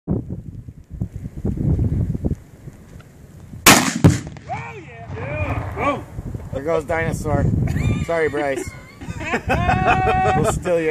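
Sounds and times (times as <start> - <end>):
rifle shot: 3.6 - 6.1
target exploding boom: 3.7 - 7.2
person whooping or laughing: 7.6 - 10.8.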